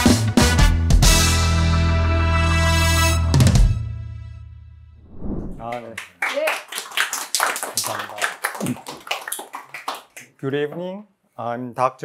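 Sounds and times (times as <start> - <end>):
small audience applauding: 5.6 - 10.4.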